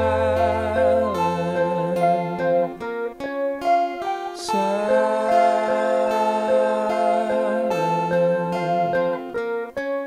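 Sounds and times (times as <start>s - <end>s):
guitars playing: 0.0s - 10.0s
scratchy pick stroke: 0.0s - 10.0s.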